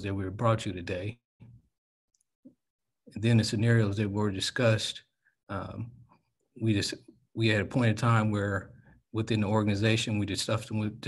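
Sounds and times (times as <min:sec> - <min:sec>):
man speaking: 0:00.0 - 0:01.2, 0:03.1 - 0:05.9, 0:06.6 - 0:11.0.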